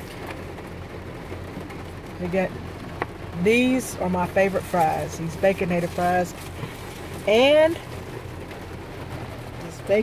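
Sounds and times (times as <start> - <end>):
constant low hum: 0.0 - 10.0
rain on car roof: 0.0 - 10.0.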